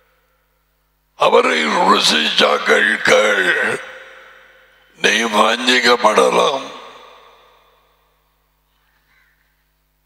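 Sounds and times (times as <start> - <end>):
man speaking through headset: 1.2 - 4.3, 5.0 - 7.2.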